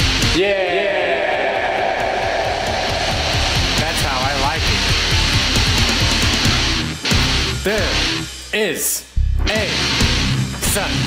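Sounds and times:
distorted electric guitar: 1.6 - 8.3
steady drum beat: 1.6 - 8.3.

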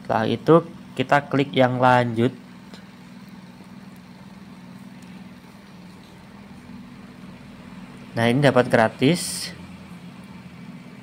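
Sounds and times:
low background hum with hiss: 0.0 - 11.0.

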